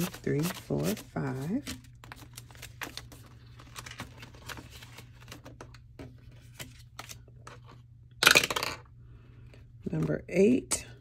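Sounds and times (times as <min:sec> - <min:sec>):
paper money rustling: 0:00.0 - 0:05.6.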